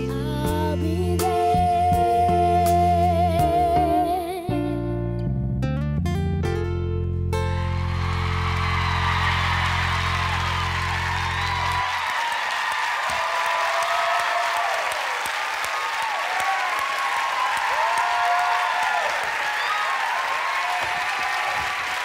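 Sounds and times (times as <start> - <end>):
audience clapping: 7.7 - 22.0
crowd shouting and whooping: 7.7 - 22.0.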